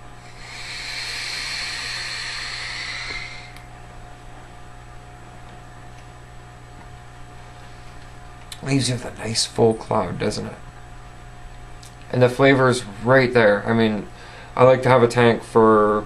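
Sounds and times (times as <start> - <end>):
vape tank hissing: 0.3 - 3.6.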